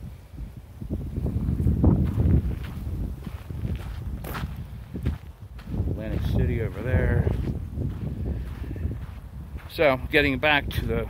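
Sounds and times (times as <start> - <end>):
footsteps on gravel: 1.4 - 10.4.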